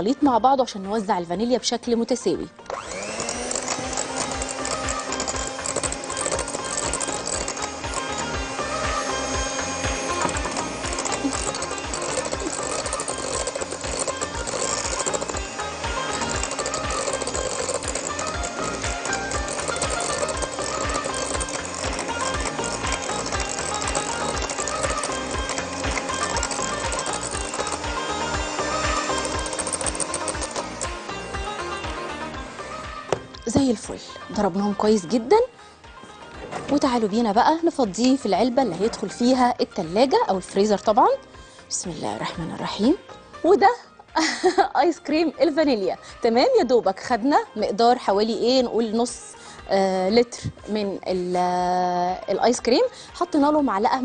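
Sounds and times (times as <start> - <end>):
electric hand mixer whining: 2.6 - 41.4.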